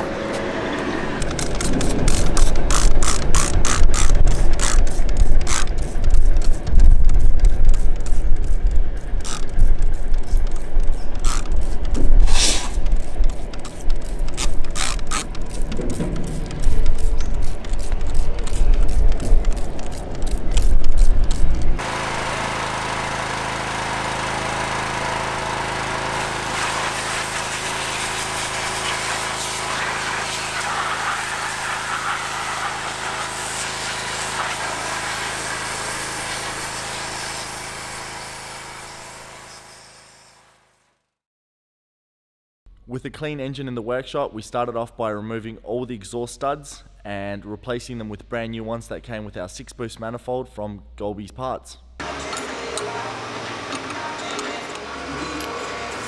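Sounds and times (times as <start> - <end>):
pressure washer motor humming: 0.0 - 40.4, 52.0 - 56.0
trigger sprayer clicking: 1.2 - 21.8
water jet hissing: 1.6 - 20.0, 26.2 - 40.3
low rumble: 15.4 - 19.6.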